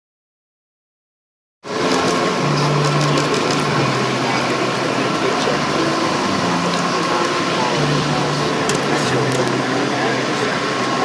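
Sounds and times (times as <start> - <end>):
jet engine roaring: 1.7 - 11.0
thin steady whine: 1.7 - 11.0.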